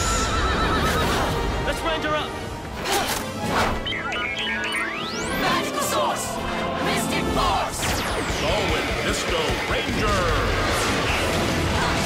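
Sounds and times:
horse whinnying: 0:00.0 - 0:01.4.

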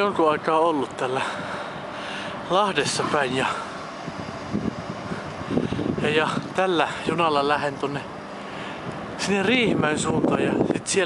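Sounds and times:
electric train standing noise: 0:00.0 - 0:11.0.

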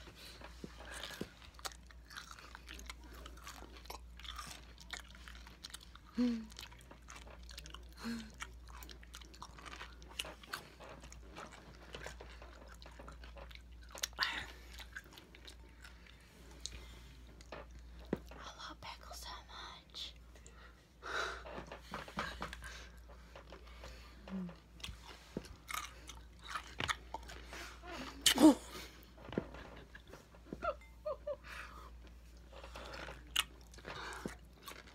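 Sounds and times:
person crunching pickles: 0:00.8 - 0:16.0, 0:24.7 - 0:28.5, 0:32.4 - 0:34.9.

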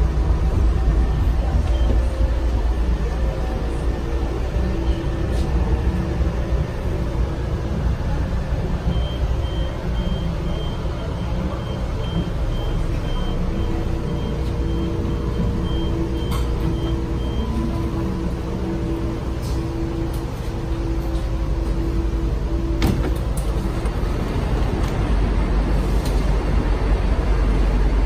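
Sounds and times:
train car low hum: 0:00.0 - 0:28.0
electronic warning beep: 0:08.9 - 0:18.2.

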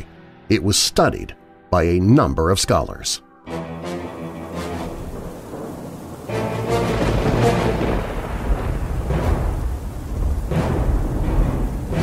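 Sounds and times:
dark music: 0:00.0 - 0:12.0
rain: 0:03.5 - 0:12.0
thunder rumbling: 0:04.0 - 0:12.0.

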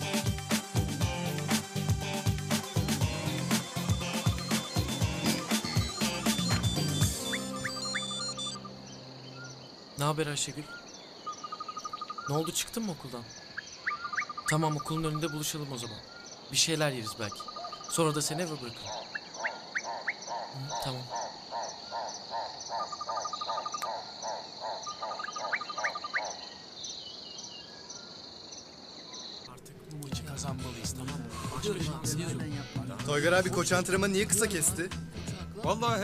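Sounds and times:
background music: 0:00.0 - 0:09.7, 0:29.6 - 0:36.0
high insect trill: 0:02.7 - 0:29.6
frogs croaking: 0:03.2 - 0:31.0
crickets chirring: 0:03.2 - 0:32.8
short rising chirps: 0:04.3 - 0:09.5.

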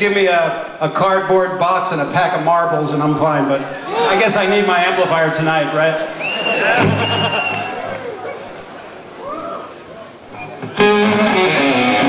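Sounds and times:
electric guitar chord ringing: 0:10.8 - 0:12.0.

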